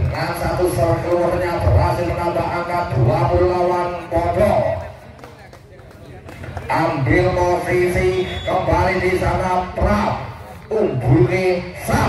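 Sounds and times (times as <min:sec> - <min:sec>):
man commentating: 0:00.0 - 0:05.0, 0:06.1 - 0:12.0.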